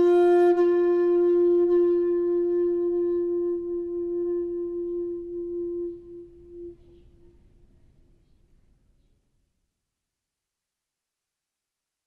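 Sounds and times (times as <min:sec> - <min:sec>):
bamboo flute long note: 0:00.0 - 0:07.5.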